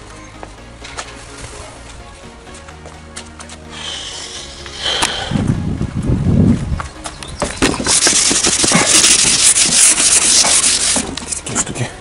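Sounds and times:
rough rubbing and scraping: 7.4s - 11.8s.

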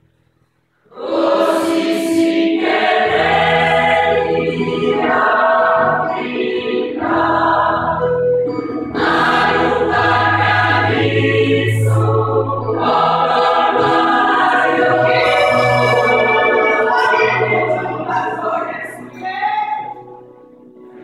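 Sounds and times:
gospel choir singing: 0.9s - 20.0s.

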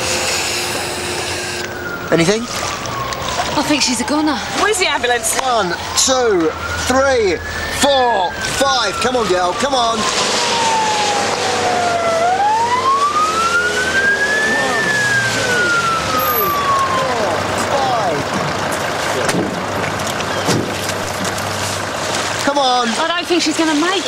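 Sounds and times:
ambulance siren wailing: 0.0s - 22.0s.

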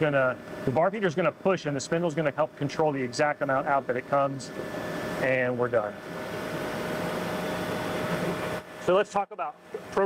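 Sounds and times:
machine whirring: 0.0s - 10.0s.

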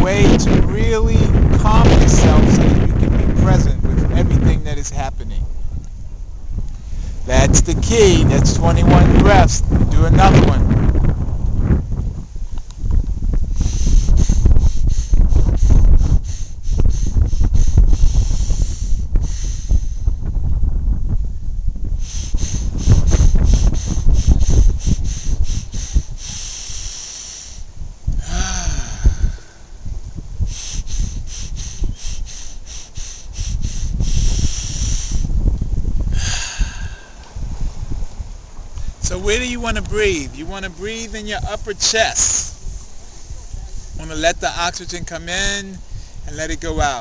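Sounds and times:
wind rumble on microphone: 0.0s - 47.0s
man breathing hard: 6.8s - 7.2s, 13.5s - 20.3s, 22.0s - 29.8s, 30.4s - 35.4s, 36.1s - 37.4s, 45.8s - 46.3s.

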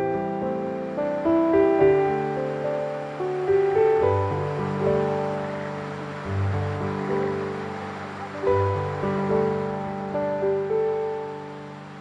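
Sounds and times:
soft instrumental music: 0.0s - 12.0s.

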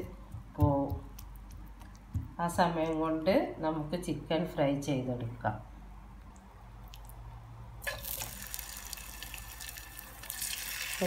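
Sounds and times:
oil sizzling in a pan: 7.8s - 11.0s.

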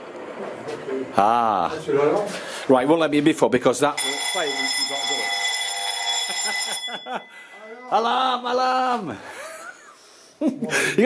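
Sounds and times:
electric alarm bell ringing: 4.0s - 7.8s.

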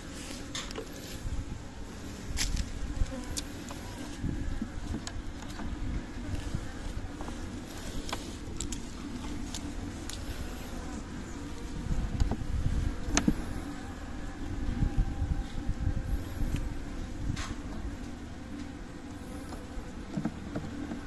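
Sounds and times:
honeybees buzzing: 0.0s - 21.0s.

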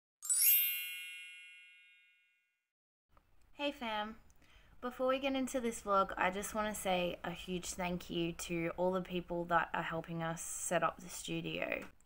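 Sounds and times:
bright bell-like chime: 0.2s - 2.6s.

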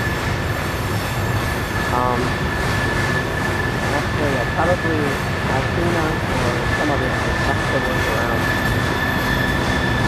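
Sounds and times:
train wheels rumbling on rail: 0.0s - 10.0s
wheel flanges squealing: 6.5s - 10.0s.

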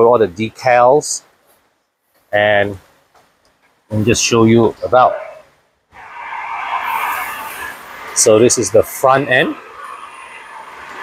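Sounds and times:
car wash rushing hiss: 6.0s - 11.0s.

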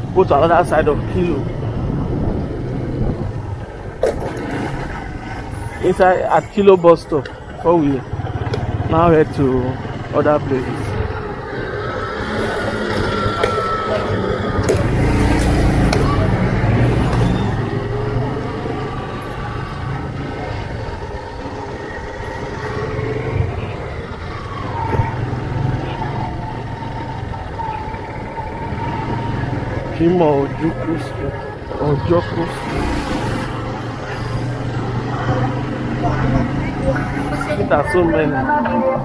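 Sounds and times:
street traffic: 0.0s - 39.0s
wind on microphone: 1.0s - 6.6s
motorcycle engine running: 6.9s - 38.3s.

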